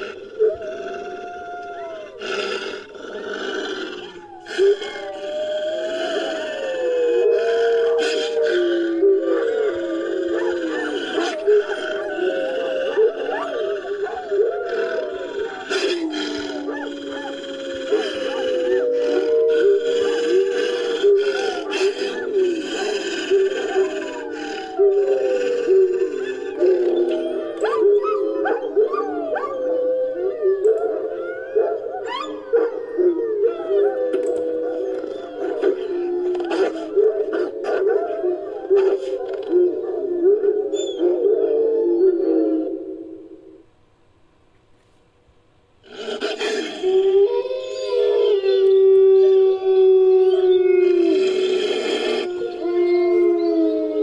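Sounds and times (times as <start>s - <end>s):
dog howls and whines: 0.0s - 43.6s, 45.8s - 54.0s.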